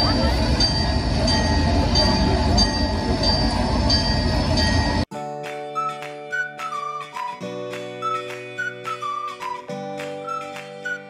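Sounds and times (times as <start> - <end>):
flute-like music: 5.2 - 11.0.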